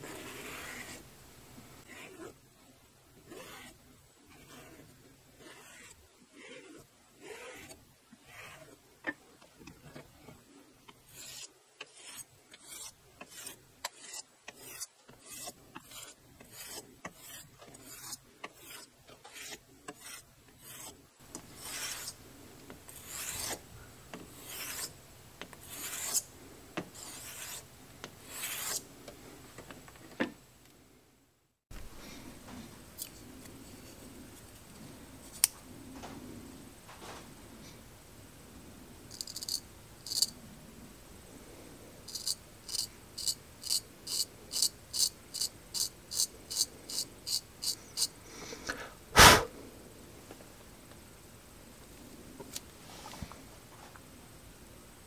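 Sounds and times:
razor swishing on strop: 0.0s - 1.0s, 3.3s - 8.8s, 11.1s - 22.2s, 25.6s - 26.3s, 28.3s - 28.8s.

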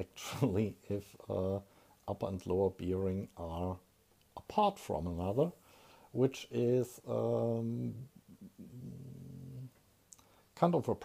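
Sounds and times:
man humming closed-mouth: 7.2s - 9.8s
faint mouth clicks: 10.1s - 10.3s.

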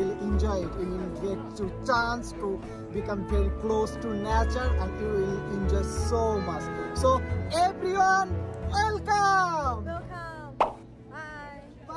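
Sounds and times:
cartoon plop sound effect: 10.6s - 10.8s.

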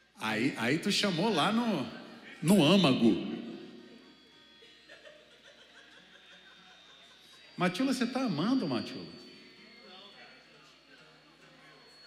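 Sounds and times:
faint chuckle: 4.6s - 7.6s.

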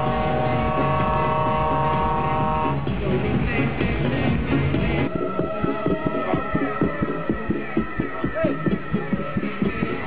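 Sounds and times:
truck air horn: 0.0s - 2.8s
loud music: 0.0s - 10.0s.

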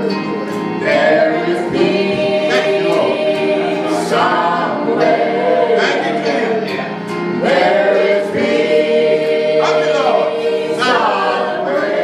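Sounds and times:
people singing gospel in harmony: 0.0s - 12.0s.

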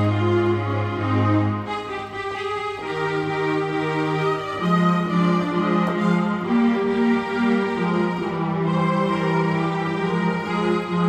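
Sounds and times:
keyboard playing choral chords: 0.0s - 11.0s.

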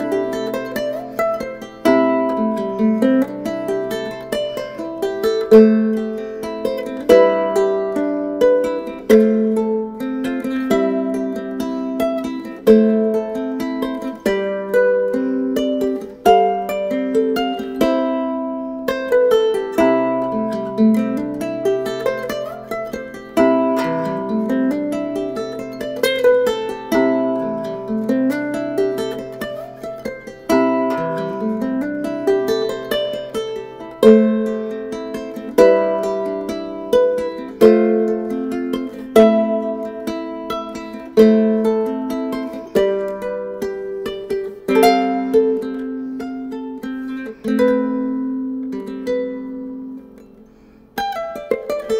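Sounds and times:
ukulele played fingerstyle: 0.0s - 51.9s.

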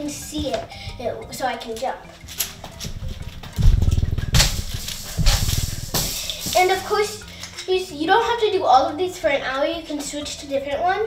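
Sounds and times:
jump rope striking floor: 2.7s - 6.8s.

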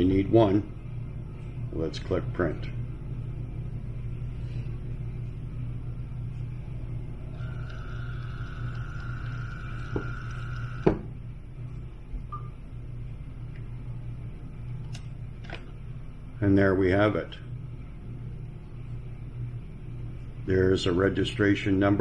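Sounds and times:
low steady hum: 0.0s - 22.0s
label printer motor whine: 7.2s - 11.1s.

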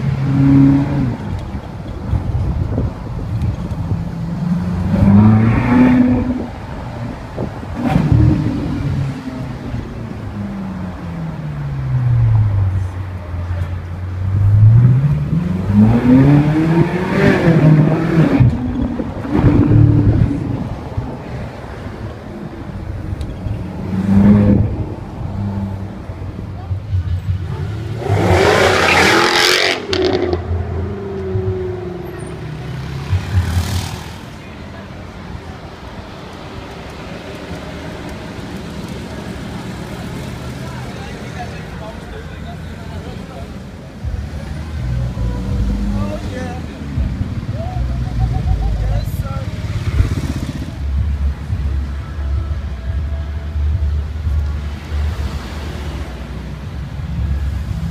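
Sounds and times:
steady engine rumble: 0.0s - 57.9s
street noise: 0.0s - 57.9s
car engine revving through gears: 14.3s - 20.5s, 27.7s - 34.1s
car accelerating hard: 14.3s - 20.8s, 27.4s - 34.2s.

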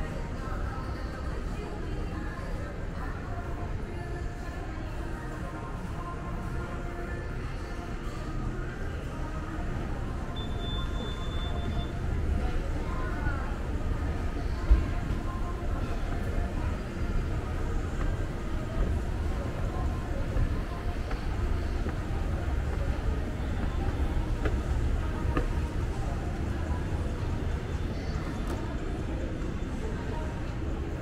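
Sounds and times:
faint background music: 0.0s - 31.0s.

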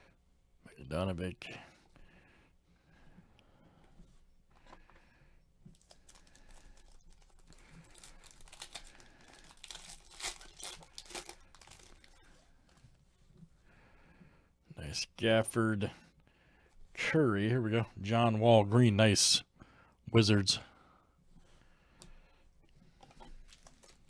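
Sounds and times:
foil wrapper crinkling and tearing: 5.7s - 12.3s, 23.2s - 24.0s.

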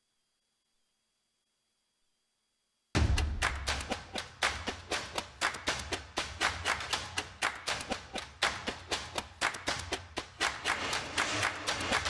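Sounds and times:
sharp percussive hits: 3.0s - 12.0s.

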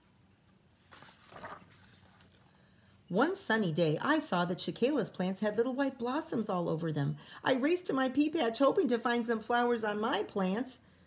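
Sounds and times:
book page turning: 0.5s - 2.5s.

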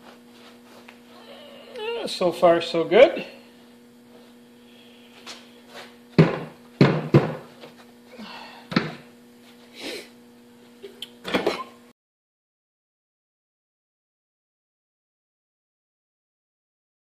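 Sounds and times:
steady low hum: 0.0s - 11.9s
wooden frames knocking and thudding: 6.2s - 7.5s.

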